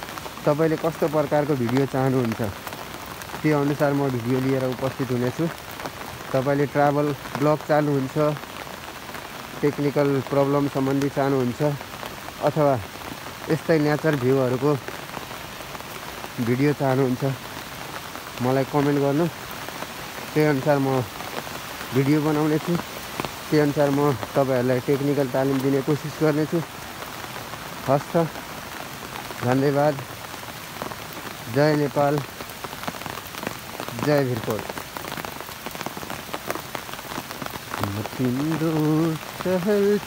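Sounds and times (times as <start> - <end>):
raindrops ticking on surfaces: 0.0 - 40.0
steady rain: 0.0 - 40.0.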